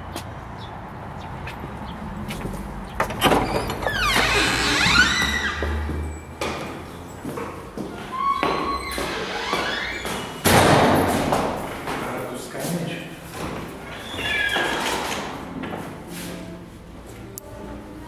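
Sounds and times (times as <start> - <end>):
creaking door hinges: 2.9 - 6.6, 8.0 - 11.2, 13.9 - 15.3
door thudding shut: 10.4 - 11.3.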